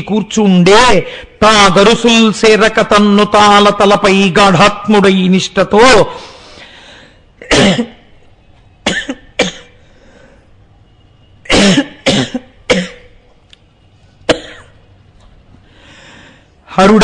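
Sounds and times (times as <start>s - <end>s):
man coughing: 7.4s - 8.1s, 8.8s - 9.8s, 11.5s - 13.1s, 14.3s - 14.8s.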